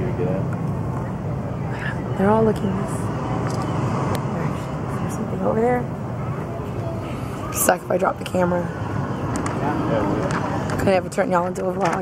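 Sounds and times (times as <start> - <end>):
low outdoor rumble: 0.0 - 12.0.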